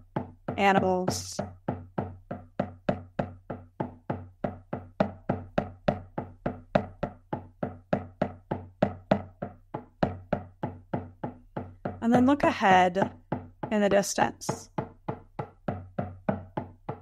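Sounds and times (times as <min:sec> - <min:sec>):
drum beaten in steady rhythm: 0:00.0 - 0:17.0.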